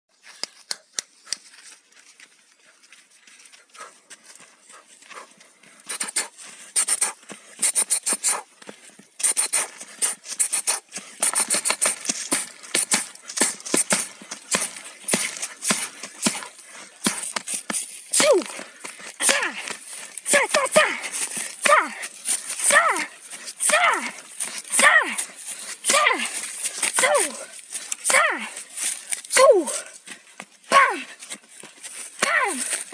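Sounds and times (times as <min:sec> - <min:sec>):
fists striking tree trunk: 0:11.2 - 0:17.5, 0:19.2 - 0:20.8
person shouting: 0:18.2 - 0:18.5, 0:19.2 - 0:19.6, 0:20.3 - 0:22.0, 0:22.6 - 0:25.2, 0:25.9 - 0:26.3, 0:27.0 - 0:27.4, 0:28.1 - 0:28.5, 0:29.3 - 0:29.8, 0:30.7 - 0:31.1, 0:32.2 - 0:32.7.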